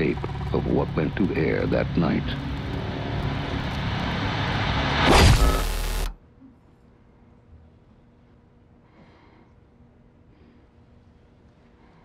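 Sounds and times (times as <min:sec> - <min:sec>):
low noisy drone: 0:00.0 - 0:12.0.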